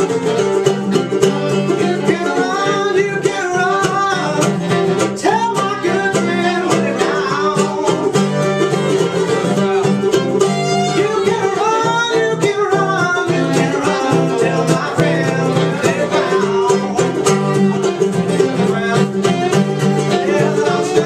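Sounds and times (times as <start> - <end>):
acoustic guitar: 0.0 - 21.0
fiddle: 0.0 - 21.0
mandolin: 0.0 - 21.0.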